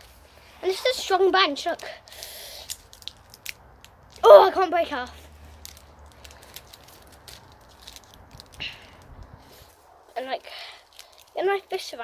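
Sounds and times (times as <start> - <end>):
branch rustling and straining: 0.0 - 12.0.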